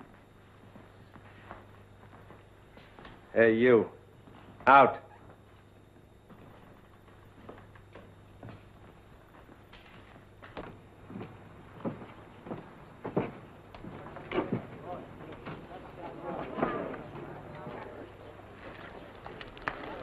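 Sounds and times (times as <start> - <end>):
low steady hum: 0.0 - 20.0
boot footsteps on wooden floor: 6.2 - 14.7.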